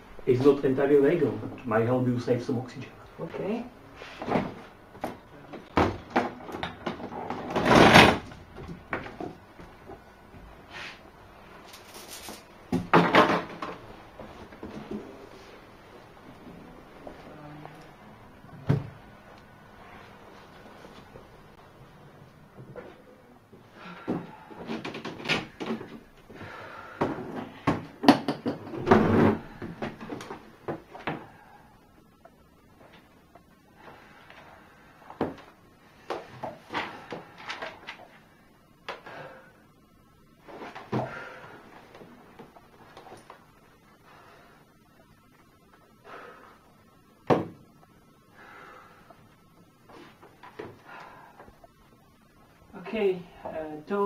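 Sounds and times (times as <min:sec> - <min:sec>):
things being moved inside: 0:00.0 - 0:54.0.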